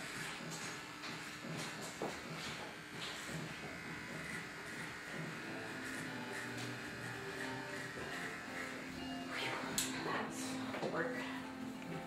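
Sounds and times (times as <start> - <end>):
electric hair clippers buzzing: 0.0 - 10.6.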